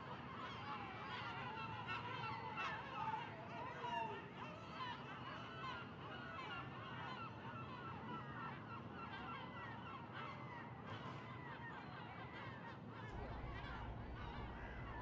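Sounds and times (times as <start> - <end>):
chorus of birds calling: 0.0 - 15.0.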